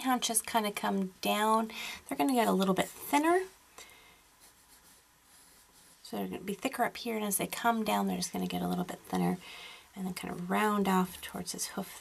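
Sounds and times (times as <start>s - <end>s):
pencil scratching on paper: 4.4s - 6.3s.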